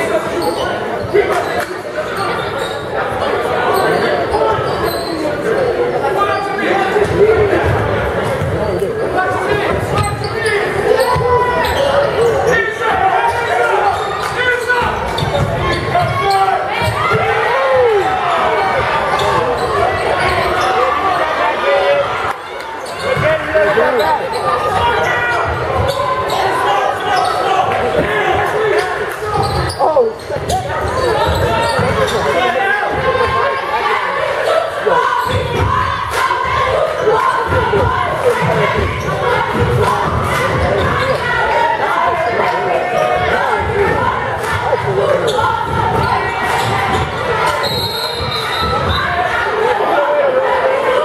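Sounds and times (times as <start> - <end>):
spectators' voices echoing: 0.0 - 51.0.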